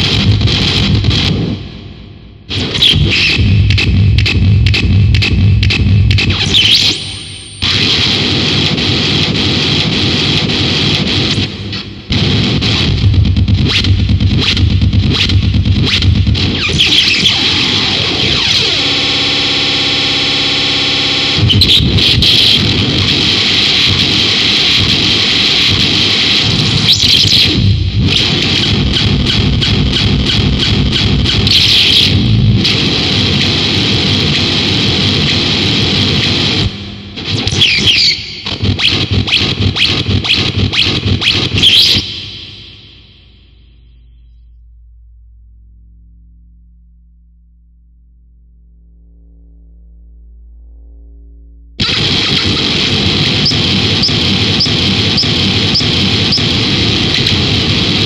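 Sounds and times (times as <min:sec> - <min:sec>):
harsh distorted noise music: 0:00.0 - 0:44.1, 0:50.6 - 0:58.0.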